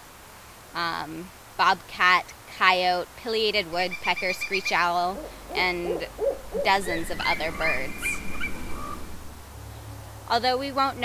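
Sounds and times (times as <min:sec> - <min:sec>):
low background rumble: 0:03.6 - 0:10.3
bird whistled calls: 0:03.8 - 0:09.3.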